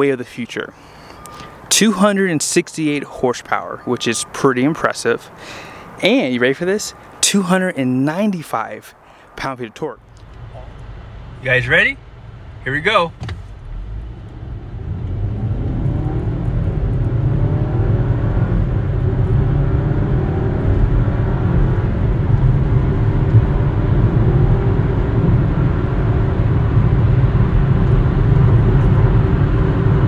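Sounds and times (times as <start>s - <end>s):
car engine accelerating: 10.0s - 30.0s.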